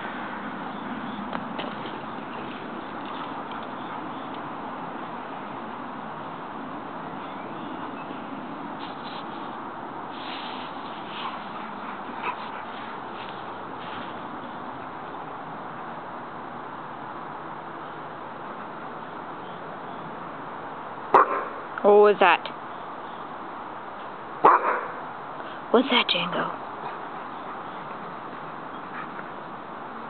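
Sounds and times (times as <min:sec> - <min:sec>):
background hiss: 0:08.7 - 0:14.4
dog barking: 0:21.2 - 0:21.5, 0:24.4 - 0:25.0.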